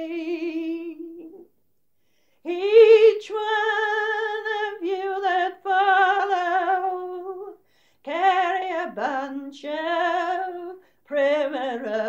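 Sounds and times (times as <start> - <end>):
woman singing unaccompanied: 0.0 - 1.4, 2.4 - 12.0.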